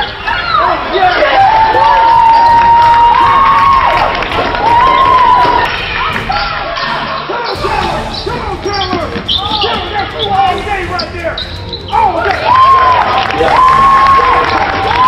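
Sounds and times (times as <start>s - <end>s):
voices calling out: 0.0s - 15.0s.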